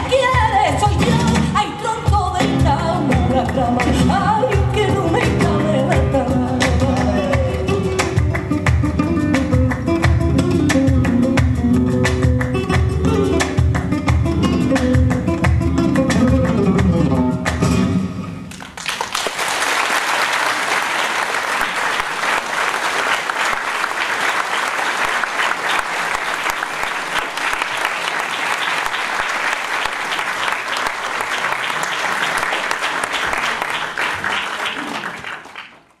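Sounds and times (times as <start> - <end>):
audience applause: 18.5 - 36.0.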